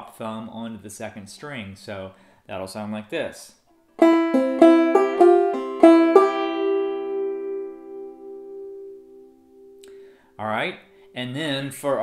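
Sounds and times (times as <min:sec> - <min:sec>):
banjo plucked notes: 0:04.0 - 0:10.0.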